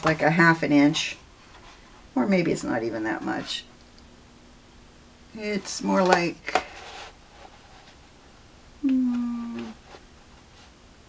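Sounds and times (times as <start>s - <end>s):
woman humming hmm: 8.8s - 9.8s.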